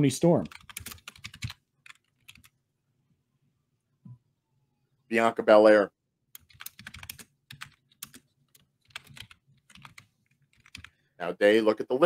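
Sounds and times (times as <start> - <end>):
typing on computer keyboard: 0.4 - 2.5, 6.4 - 10.9.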